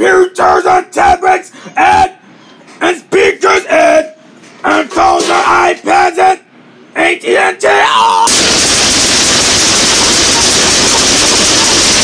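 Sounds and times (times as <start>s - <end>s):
person's voice: 2.8s - 8.3s.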